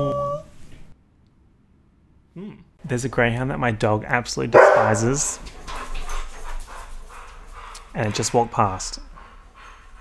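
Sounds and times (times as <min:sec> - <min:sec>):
dog barking faintly: 0:04.6 - 0:05.4.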